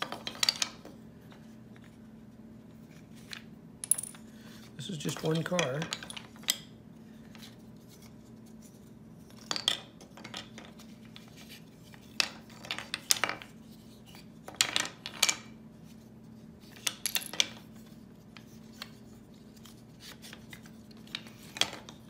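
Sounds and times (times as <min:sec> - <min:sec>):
wooden puzzle pieces clattering on stone: 0:00.0 - 0:01.0, 0:02.9 - 0:06.7, 0:09.2 - 0:15.6, 0:16.6 - 0:22.0.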